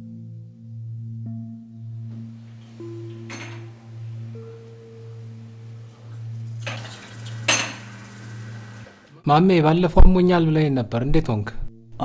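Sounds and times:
steady low hum: 2.2s - 9.2s
tableware clinking: 2.3s - 9.0s.

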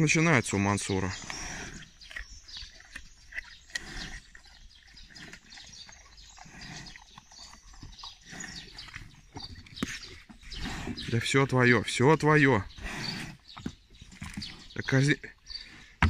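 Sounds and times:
bear crunching apples: 0.5s - 11.3s.

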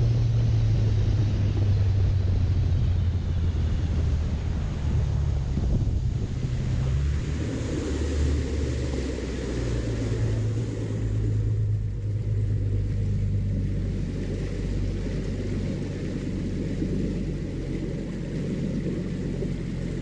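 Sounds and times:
outboard motor running: 0.0s - 20.0s
water noise off hull: 0.0s - 20.0s
wind on microphone: 0.0s - 20.0s.

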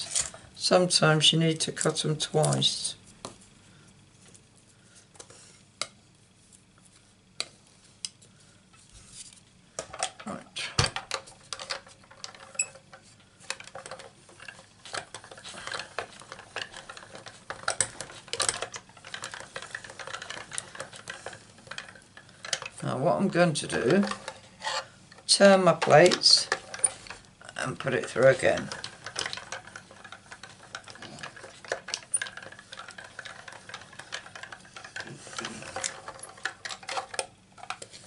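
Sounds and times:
die-cutting machine clicking and grinding: 13.5s - 24.4s, 25.1s - 38.0s.

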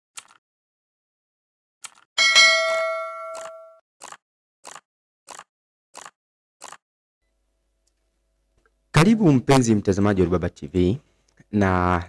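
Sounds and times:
bell-like ding: 2.2s - 3.8s.

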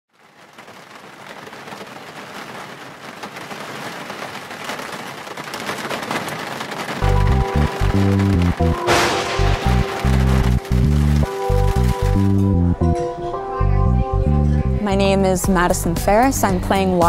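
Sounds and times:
rain falling: 0.1s - 13.0s
music with deep pulsing bass: 7.0s - 14.9s.

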